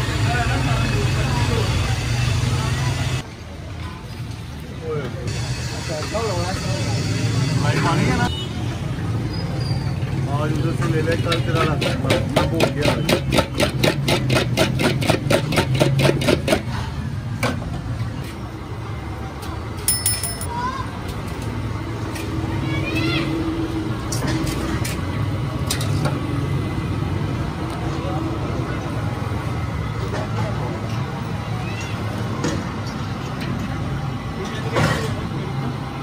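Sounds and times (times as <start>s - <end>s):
metal clinks: 19.9s - 20.6s.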